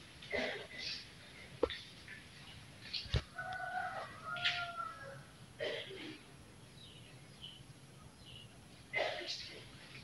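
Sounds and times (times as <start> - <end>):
rooster crowing: 3.3 - 5.4.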